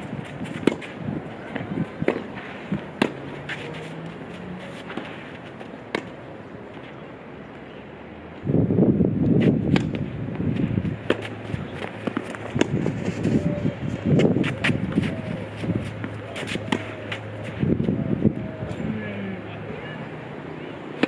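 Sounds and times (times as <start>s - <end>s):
wind rumbling on microphone: 0.0s - 4.0s, 8.4s - 19.3s
racket striking tennis ball: 0.0s - 6.2s, 9.4s - 10.0s, 10.6s - 13.4s, 14.2s - 17.3s.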